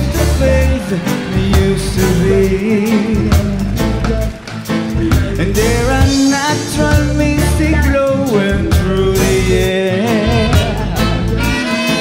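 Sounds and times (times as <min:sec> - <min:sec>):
reggae band playing: 0:00.0 - 0:12.0.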